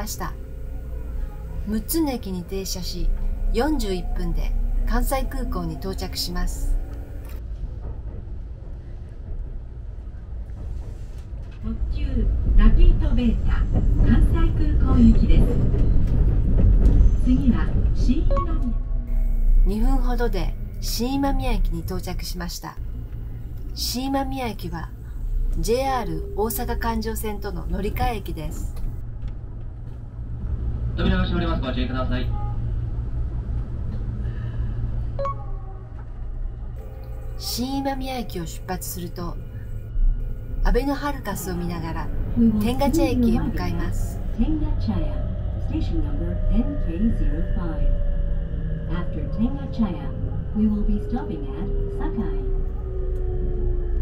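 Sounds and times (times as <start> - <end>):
train rumbling from inside carriage: 0.0 - 54.0
voice announcement: 23.7 - 28.8, 37.3 - 39.6, 40.6 - 47.8.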